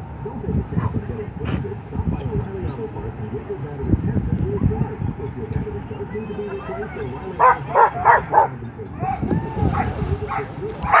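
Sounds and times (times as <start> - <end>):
dog barking: 6.7 - 11.0.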